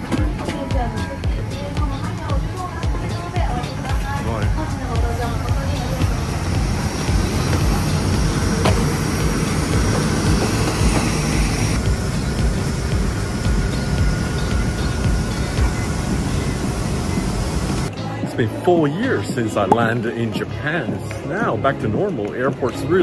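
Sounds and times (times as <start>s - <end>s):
deep rumble: 0.8s - 17.9s
roar of aircraft and ground equipment: 5.4s - 17.9s.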